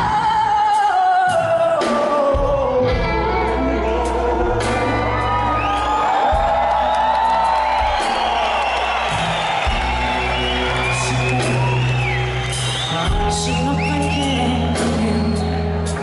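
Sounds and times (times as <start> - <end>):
blues-rock band playing: 0.0 - 16.0
audience whooping: 3.8 - 16.0.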